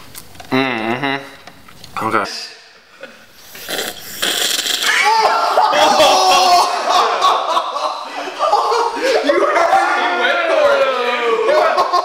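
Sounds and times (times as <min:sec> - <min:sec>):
person snorting through a straw: 0:03.5 - 0:05.0.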